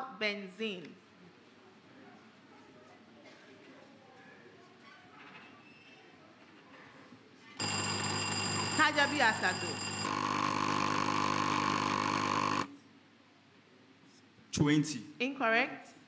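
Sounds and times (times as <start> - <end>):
electronic alarm: 7.6 - 12.7.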